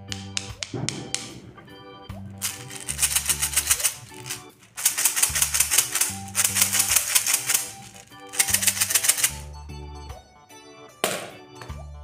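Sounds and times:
rapid clicking: 0.1s - 1.6s, 2.3s - 9.4s.

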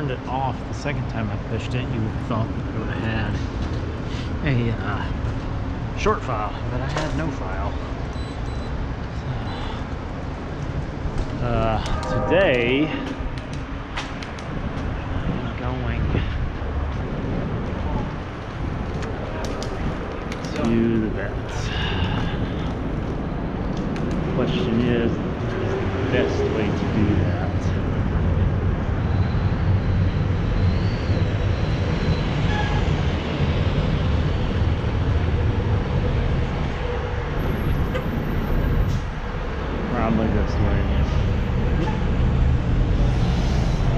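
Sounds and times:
bus passing close: 0.0s - 43.9s
city traffic: 0.0s - 43.9s
wind noise on microphone: 10.0s - 39.9s.

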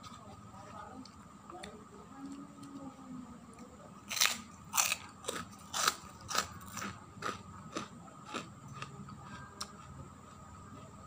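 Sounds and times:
crunchy cracker being chewed: 4.1s - 10.4s.

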